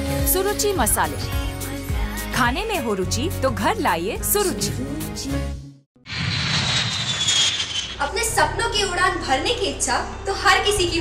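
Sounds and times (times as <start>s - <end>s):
jet engines rushing and whining: 6.1s - 8.2s.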